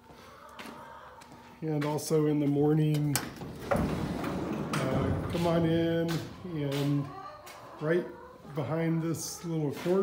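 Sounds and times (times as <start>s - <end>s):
sliding metal door rolling: 3.2s - 6.6s.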